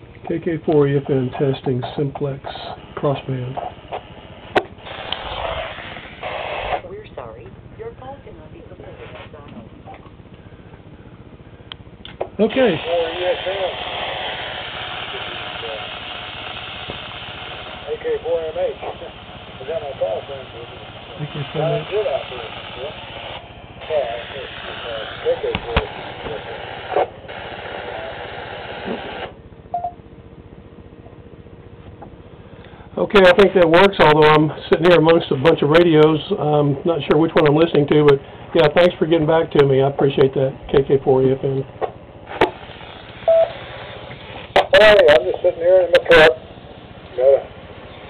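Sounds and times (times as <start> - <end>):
radio hiss: 0.3 - 29.4, 32.3 - 48.0
voice over radio speaker: 1.0 - 3.8, 6.7 - 10.0, 12.4 - 16.1, 17.7 - 29.3, 44.6 - 48.0
radio click: 25.2 - 27.8, 41.8 - 44.8
short radio beep: 43.2 - 43.6.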